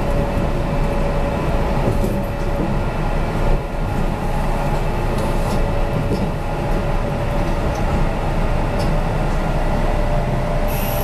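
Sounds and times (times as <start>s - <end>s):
train humming tone: 0.0s - 11.0s
train wheels rumbling on rail: 0.0s - 11.0s.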